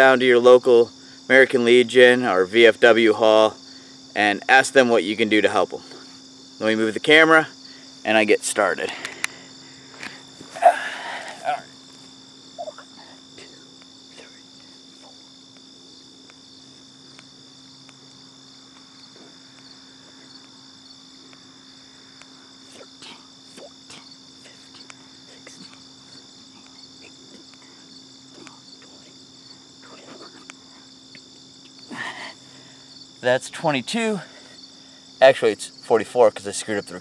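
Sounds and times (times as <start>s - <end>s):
insects chirping in grass: 0.0s - 37.0s
man doing push-ups on grass: 8.8s - 15.2s.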